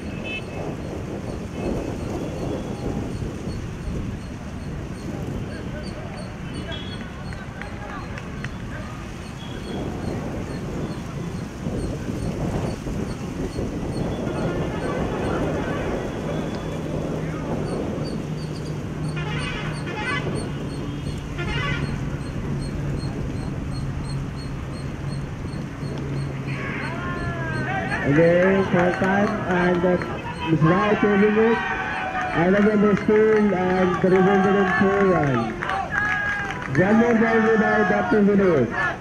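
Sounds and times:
outdoor background noise: 0.0s - 39.0s
indistinct voices: 25.1s - 39.0s
man speaking: 26.6s - 35.5s.

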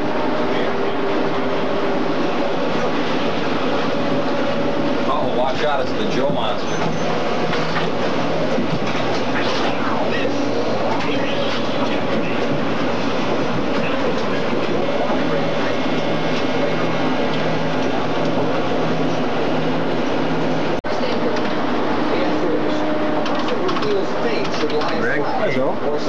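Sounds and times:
cooling fans whirring: 0.0s - 26.0s.

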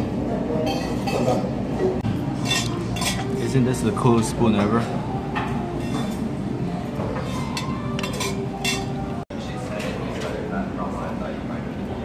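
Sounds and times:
metal spoon clinking on cup: 2.4s - 3.3s, 7.6s - 9.0s.

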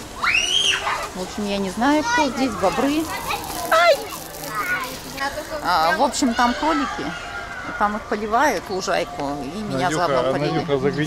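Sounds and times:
children's voices at play: 0.0s - 11.0s.

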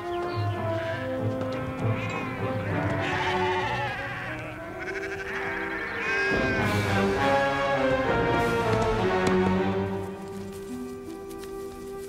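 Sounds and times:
music with long held notes: 0.0s - 12.0s
sheep bleating: 0.7s - 7.1s.

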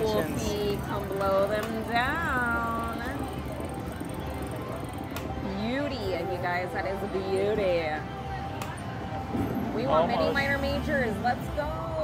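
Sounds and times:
faint slot machine game music: 0.0s - 12.0s.

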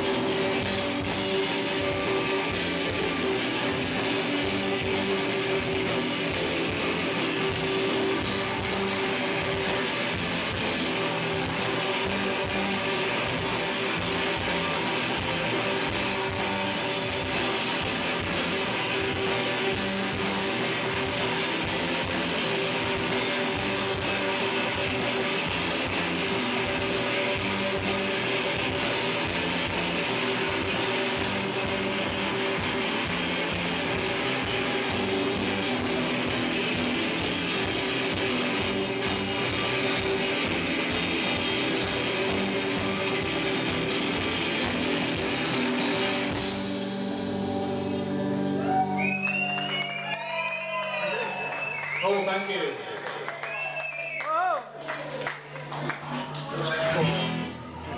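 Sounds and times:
drum kit: 0.0s - 49.5s
bass guitar: 0.0s - 57.9s
electric guitars: 0.0s - 57.9s.

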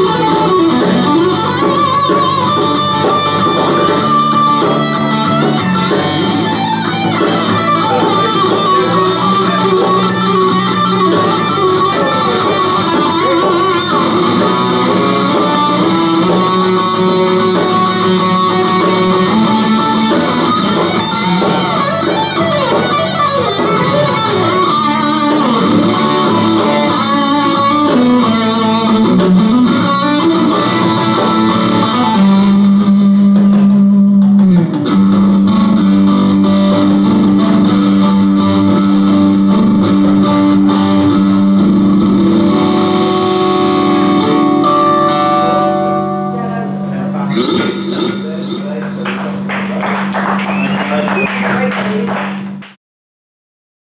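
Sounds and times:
electric guitar rock lead: 0.0s - 52.8s.

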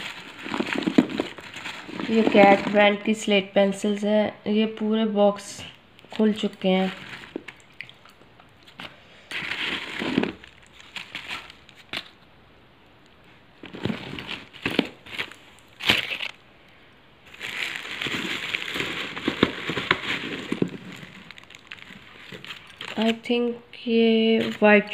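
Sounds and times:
plastic and paper rustling: 0.0s - 3.2s, 6.1s - 7.6s, 8.7s - 12.2s, 13.6s - 16.4s, 17.3s - 24.9s.

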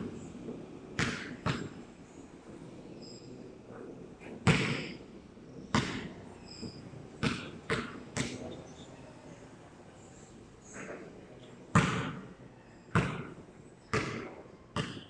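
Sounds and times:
basketball bouncing on hard floor: 4.4s - 4.8s, 5.7s - 6.0s, 12.9s - 13.3s, 13.9s - 15.0s.

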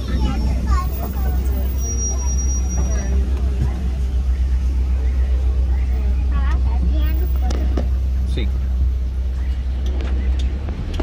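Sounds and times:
passengers chattering: 0.0s - 11.0s
truck engine rumbling: 0.0s - 11.0s.

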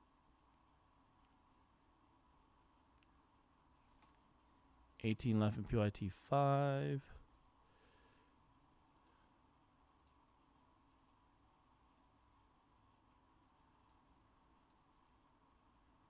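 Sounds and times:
faint steady hum: 0.0s - 16.0s
faint clicks: 2.9s - 3.2s, 7.2s - 7.6s, 8.9s - 9.2s, 9.9s - 10.3s, 10.9s - 11.2s, 11.8s - 12.2s, 13.7s - 14.9s.

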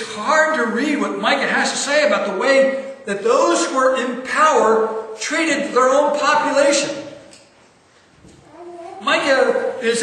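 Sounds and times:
man preaching: 0.0s - 7.3s, 9.0s - 10.0s.

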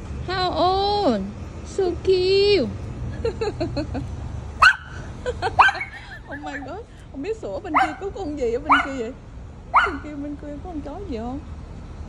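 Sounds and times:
dog yipping and whining: 4.6s - 5.0s, 5.6s - 6.7s, 7.8s - 8.1s, 8.7s - 9.0s, 9.7s - 10.1s.

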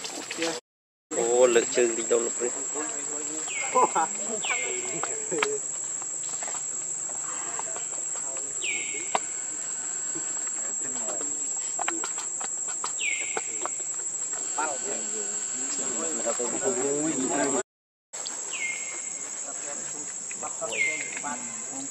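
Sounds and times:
insects chirring: 0.0s - 17.6s, 18.2s - 21.9s.

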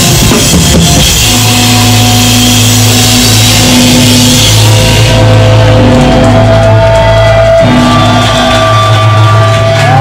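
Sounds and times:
cymbals washing: 0.0s - 6.0s
guitar and bass chord ringing: 0.0s - 10.0s.

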